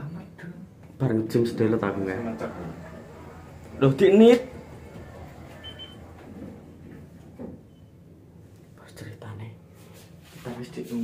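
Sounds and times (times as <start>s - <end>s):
lift steady low hum: 0.6s - 8.8s
faint murmured voices: 1.5s - 7.7s.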